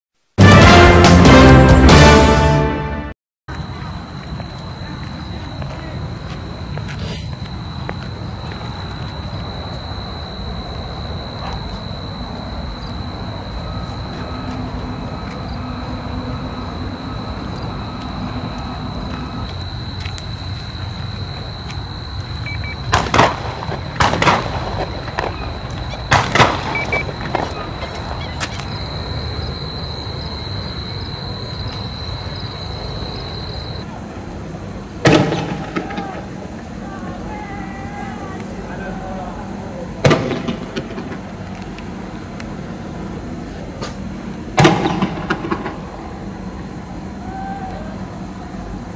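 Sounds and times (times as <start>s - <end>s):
sharp bangs: 22.7s - 28.8s, 35.0s - 36.3s, 40.0s - 41.3s, 44.6s - 45.9s.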